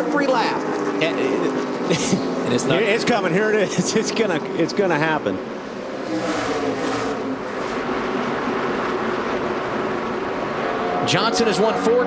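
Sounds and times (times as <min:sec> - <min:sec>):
race car engines droning: 0:00.0 - 0:12.0
race cars passing: 0:00.0 - 0:12.0.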